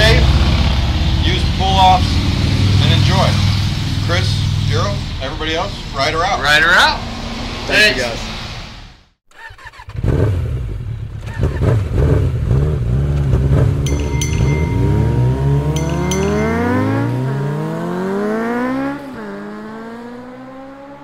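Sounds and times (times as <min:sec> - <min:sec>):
vehicle engine accelerating: 0:00.0 - 0:05.3, 0:09.9 - 0:21.0.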